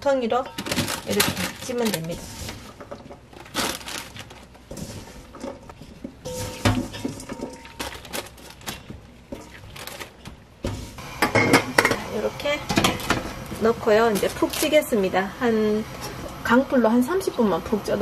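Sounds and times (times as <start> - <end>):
paper and gloves rustling: 0.5 - 11.0, 12.1 - 15.8
metal bowls clicking: 5.3 - 10.2.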